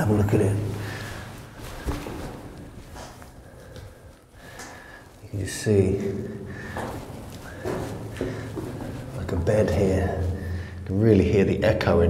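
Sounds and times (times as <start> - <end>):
person breathing: 0.7 - 2.3, 3.0 - 5.2, 6.0 - 9.1, 10.2 - 10.9.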